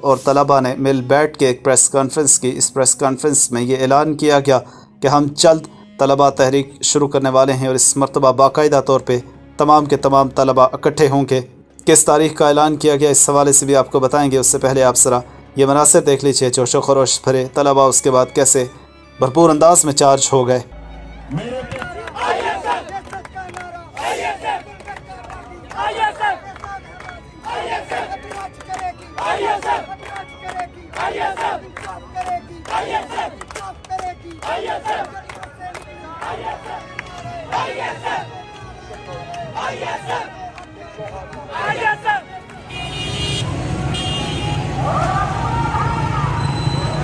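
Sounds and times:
crowd of students shouting: 21.6s - 24.9s, 25.6s - 30.2s, 30.9s - 32.0s, 32.6s - 38.5s, 39.1s - 42.3s, 44.6s - 47.0s
high-pitched horn toots: 42.7s - 44.9s.

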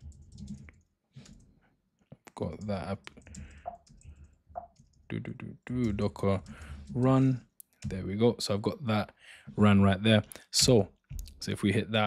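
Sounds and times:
computer keyboard keystrokes: 0.0s - 1.4s.

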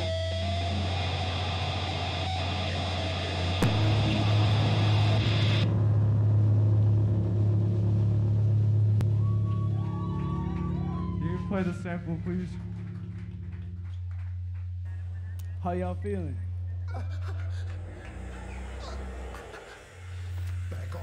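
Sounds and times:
distorted electric guitar and bass: 0.0s - 21.0s
low amp hum: 0.0s - 21.0s.

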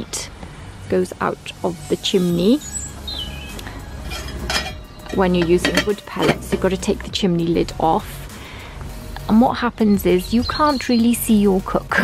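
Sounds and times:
metal scraping on metal: 3.7s - 7.0s
metal squeak: 3.8s - 6.9s.

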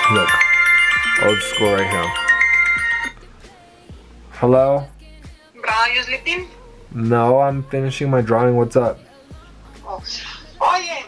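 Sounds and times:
phone ringtone chiming: 0.0s - 3.2s.

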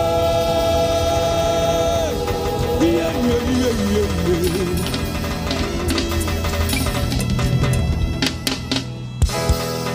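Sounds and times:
church band bass: 0.0s - 9.9s.

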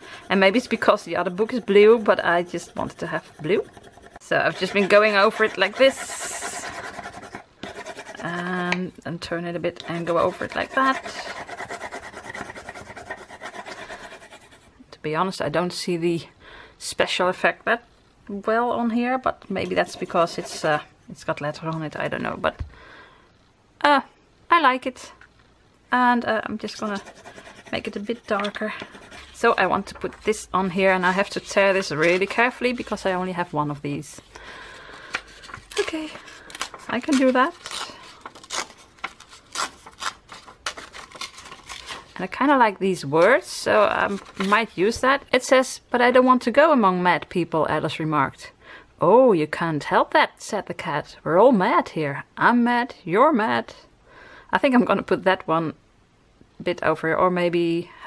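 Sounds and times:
pencil scribbling on paper: 0.0s - 8.6s, 9.7s - 14.7s, 19.6s - 20.8s, 26.7s - 29.9s, 30.6s - 33.6s
paper page tearing: 35.2s - 42.2s, 44.1s - 44.7s.

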